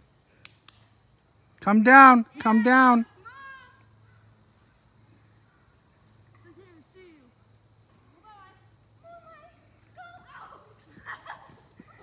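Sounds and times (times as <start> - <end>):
distant children calling out: 2.0 - 12.0.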